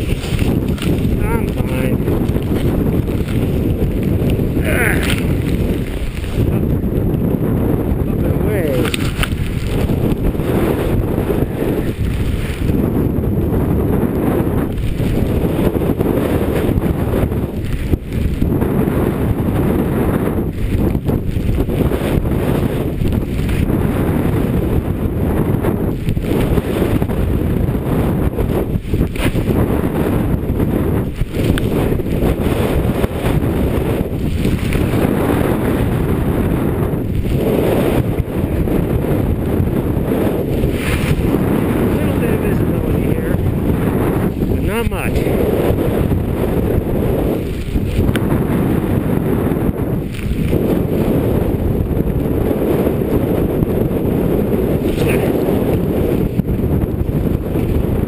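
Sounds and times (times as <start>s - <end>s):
strong wind buffeting microphone: 0.0s - 58.0s.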